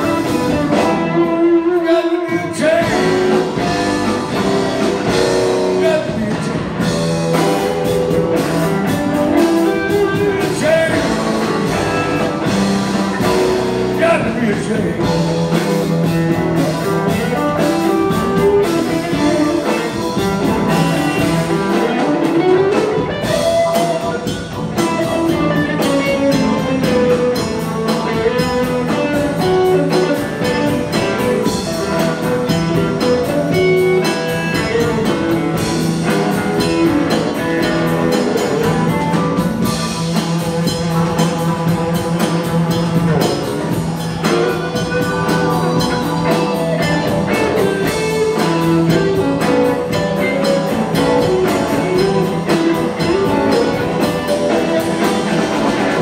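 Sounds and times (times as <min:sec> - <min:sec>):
bluesy electric guitar lead: 0:00.0 - 0:56.0
steady drum beat: 0:00.0 - 0:56.0.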